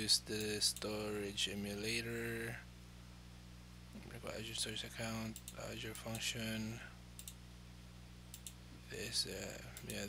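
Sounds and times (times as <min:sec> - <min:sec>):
faint low hum: 0:00.0 - 0:10.0
computer mouse clicking: 0:07.2 - 0:07.4, 0:08.3 - 0:08.6.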